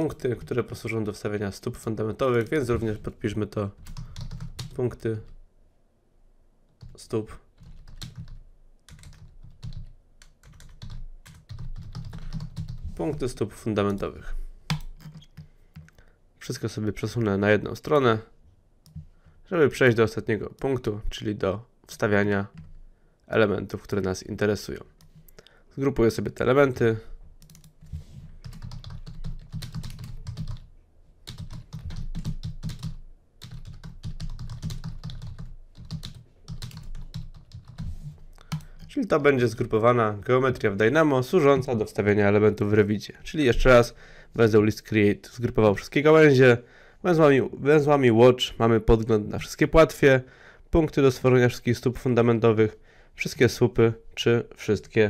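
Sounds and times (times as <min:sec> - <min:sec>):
typing on computer keyboard: 0:03.8 - 0:04.8, 0:07.6 - 0:12.8, 0:14.7 - 0:16.0, 0:27.4 - 0:27.8, 0:28.4 - 0:30.7, 0:31.3 - 0:37.8.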